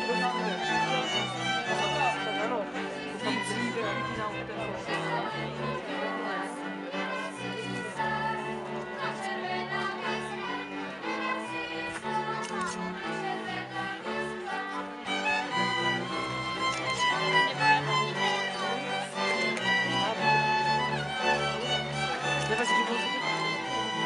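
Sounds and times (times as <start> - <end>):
fiddles playing lively tune: 0.0 - 24.0.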